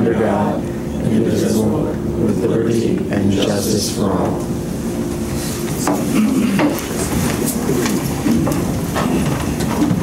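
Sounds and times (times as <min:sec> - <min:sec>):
low background talk: 0:00.0 - 0:04.6.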